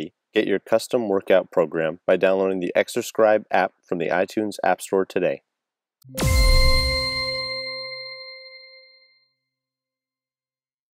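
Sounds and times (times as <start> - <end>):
bell-like chime: 6.0 - 9.3
deep boom: 6.1 - 7.9.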